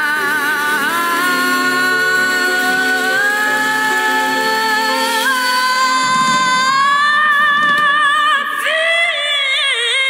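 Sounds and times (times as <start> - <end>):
sustained accompaniment: 0.0 - 8.6
girl singing long high note: 0.0 - 10.0.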